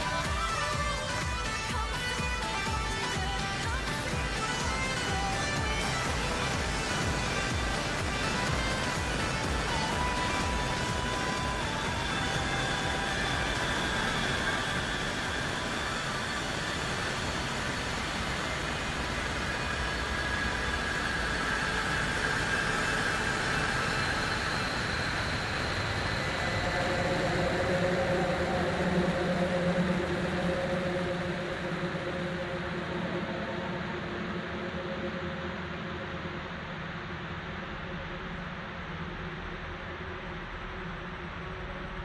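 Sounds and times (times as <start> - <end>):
dark ambient drone: 0.0 - 42.0.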